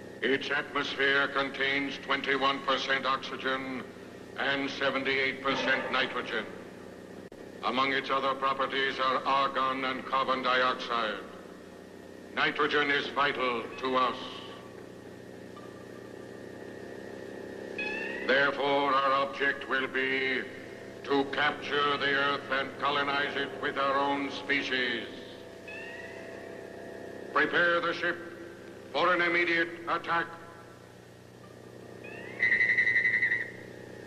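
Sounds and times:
faint low hum: 0.0s - 34.0s
electronic sci-fi drone: 17.7s - 30.7s, 31.4s - 34.0s
electronic trilling tone: 17.8s - 18.5s, 25.7s - 26.6s, 32.0s - 33.7s.

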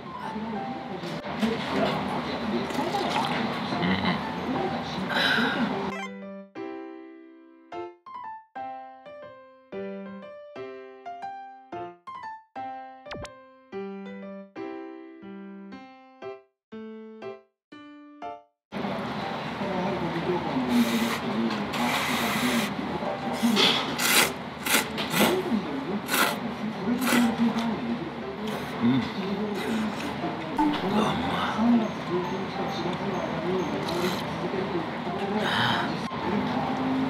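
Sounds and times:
restaurant chatter: 0.2s - 6.1s, 18.8s - 37.0s
noodles being slurped: 23.4s - 25.4s, 26.1s - 26.4s, 27.0s - 27.7s.

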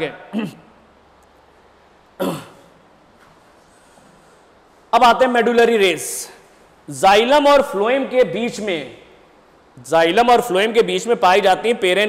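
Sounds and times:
man clearing throat: 0.3s - 0.7s, 2.2s - 2.8s.

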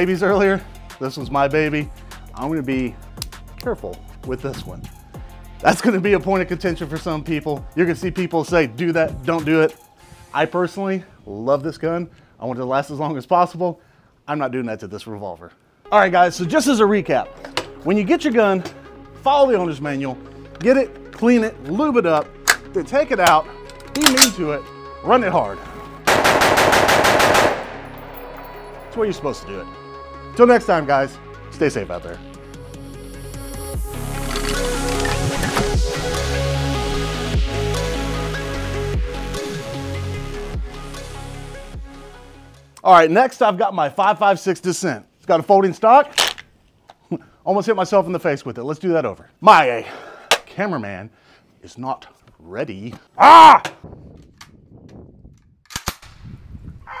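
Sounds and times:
sharp metallic gun clicks: 22.4s - 24.4s, 26.1s - 28.6s, 55.6s - 56.2s
rifle firing rapid shots: 26.1s - 28.2s.

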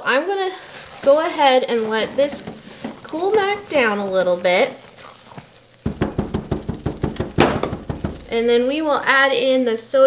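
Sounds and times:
spatula stirring thick soap paste: 0.0s - 9.0s
soft knocks and squelches: 0.8s - 4.3s, 4.9s - 8.8s.

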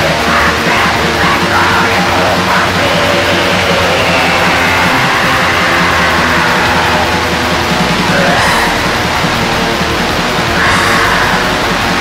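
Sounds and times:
black metal with distorted guitars: 0.0s - 12.0s.

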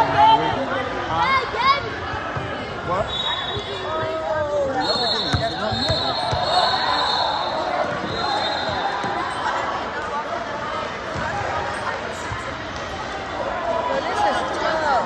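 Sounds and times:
players and spectators voices: 0.0s - 15.0s.

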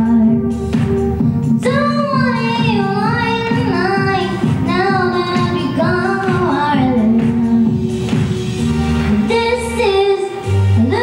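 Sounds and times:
girl singing into microphone: 0.0s - 8.0s, 9.1s - 11.0s
instrumental backing music: 0.0s - 11.0s.

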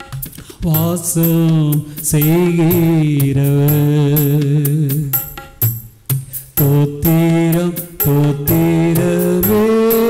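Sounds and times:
sharp percussion strikes: 0.0s - 10.0s
man singing a hymn: 0.6s - 5.2s, 6.6s - 10.0s.

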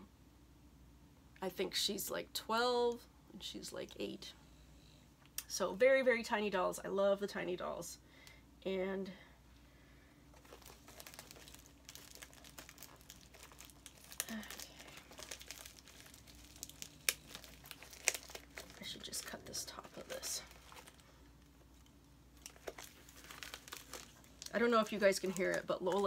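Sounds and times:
packaging crinkling and tearing: 10.3s - 26.0s.

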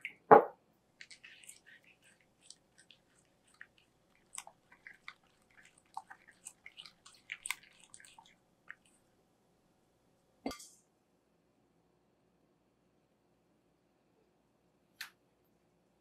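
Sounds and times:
spatula stirring thick batter: 1.0s - 9.1s.

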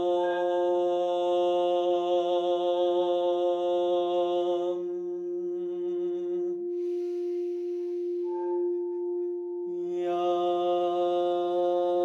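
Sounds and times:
steady drone tone: 0.0s - 11.9s
long breath: 6.6s - 9.3s.

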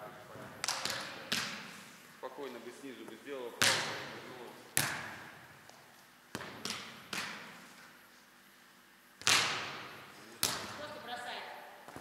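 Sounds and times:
volleyball struck with a slap: 0.6s - 1.7s, 3.6s - 4.1s, 4.7s - 5.4s, 6.3s - 7.6s, 9.2s - 10.8s.

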